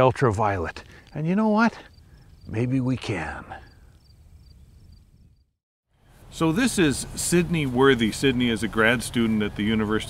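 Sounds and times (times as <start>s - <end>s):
crickets chirping: 0.5s - 5.6s.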